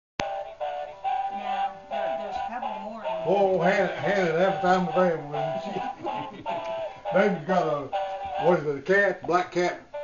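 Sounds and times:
toy playing tinny electronic song: 0:00.2 - 0:08.6.

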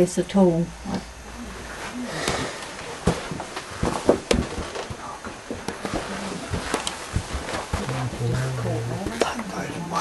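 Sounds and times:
footsteps on rock floor: 0:02.3 - 0:09.3.

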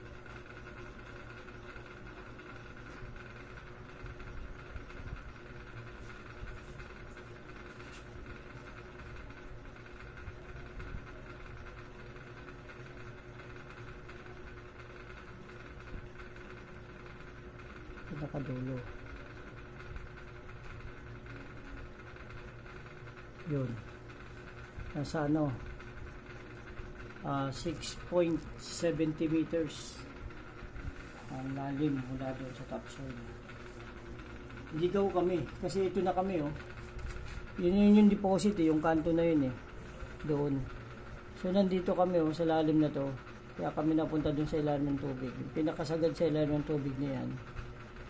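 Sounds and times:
steady electrical hum: 0:00.0 - 0:48.0.

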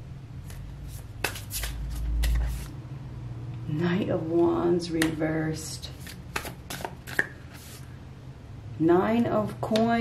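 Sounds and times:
cards flicking and tapping: 0:00.5 - 0:02.7, 0:06.0 - 0:07.4.

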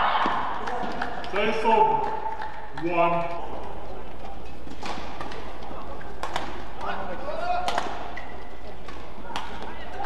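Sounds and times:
shuttlecock hits off racket: 0:06.2 - 0:06.9, 0:07.6 - 0:08.2.

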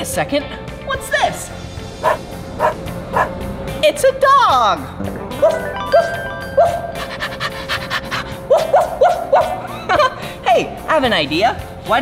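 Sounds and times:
background music: 0:00.0 - 0:12.0
dog panting: 0:02.0 - 0:03.3, 0:06.9 - 0:08.9
dog yipping: 0:02.0 - 0:03.3, 0:05.4 - 0:09.6.

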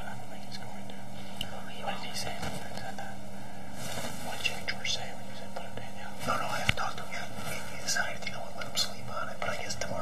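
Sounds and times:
person whispering: 0:00.0 - 0:03.2, 0:03.8 - 0:10.0
low electrical hum and hiss: 0:00.0 - 0:10.0.

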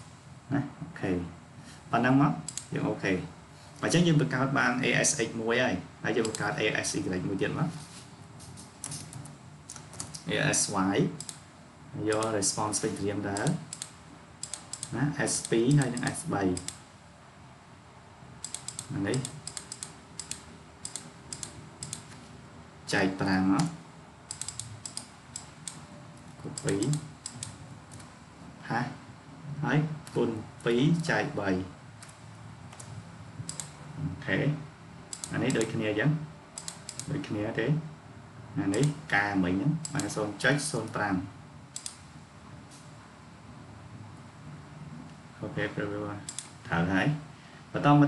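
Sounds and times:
person speaking: 0:00.0 - 0:16.8, 0:18.5 - 0:22.2, 0:22.8 - 0:31.8, 0:32.8 - 0:37.9, 0:38.6 - 0:41.4, 0:45.4 - 0:48.0
quiet room noise: 0:00.0 - 0:48.0
keyboard and mouse clicking: 0:02.5 - 0:02.7, 0:06.2 - 0:06.5, 0:08.8 - 0:10.3, 0:11.2 - 0:11.4, 0:12.1 - 0:16.8, 0:18.4 - 0:22.2, 0:23.6 - 0:25.8, 0:26.5 - 0:28.1, 0:32.0 - 0:33.8, 0:35.1 - 0:35.8, 0:36.6 - 0:37.2, 0:39.8 - 0:40.2, 0:41.8 - 0:42.0, 0:46.3 - 0:46.6.

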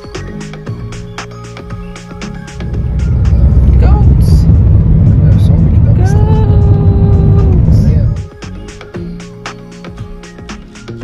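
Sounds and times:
car rumble from inside cabin: 0:02.3 - 0:08.5.

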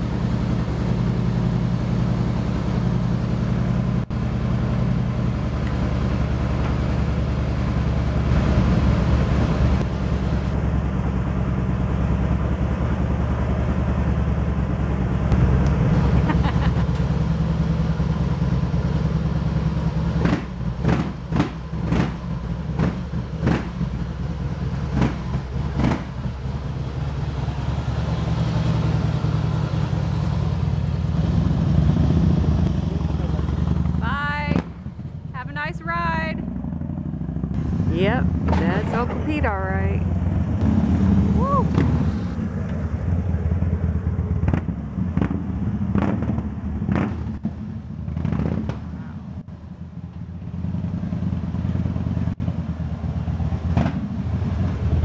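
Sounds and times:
motorcycle engine revving: 0:15.3 - 0:35.5, 0:36.4 - 0:55.0.

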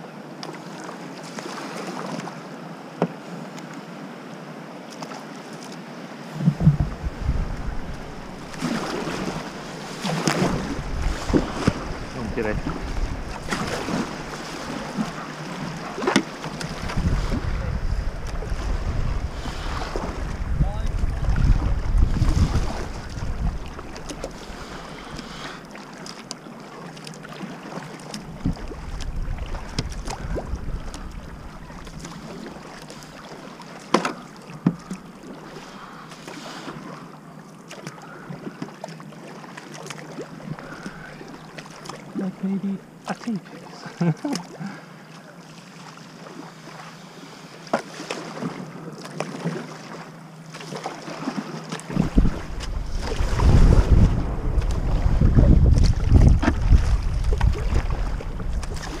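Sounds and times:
kayak paddle strokes: 0:04.8 - 0:59.0
river water rushing: 0:06.0 - 0:17.8
wind buffeting microphone: 0:06.3 - 0:15.8, 0:16.5 - 0:25.1, 0:28.3 - 0:32.2, 0:51.9 - 0:59.0.

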